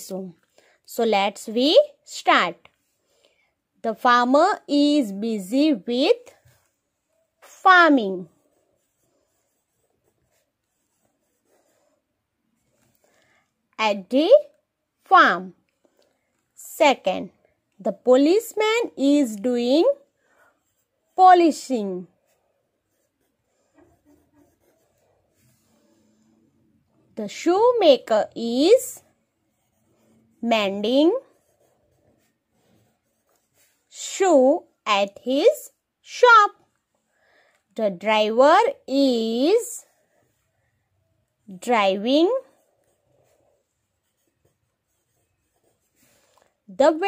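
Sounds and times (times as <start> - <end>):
pencil scratching on paper: 4.0 - 37.2, 38.0 - 47.0.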